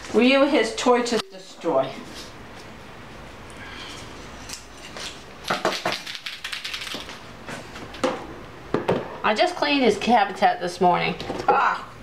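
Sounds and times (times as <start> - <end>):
small objects clicking and rattling: 5.0 - 7.2.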